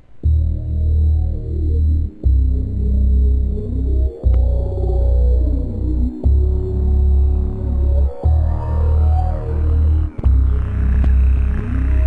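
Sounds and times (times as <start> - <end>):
heavy synth bass: 0.2 - 12.0
house music: 0.2 - 12.0.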